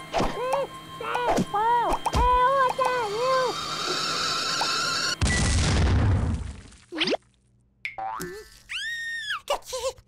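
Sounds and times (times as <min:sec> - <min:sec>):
sharp click: 0:00.2 - 0:03.0
long high cartoon tone: 0:00.3 - 0:03.6.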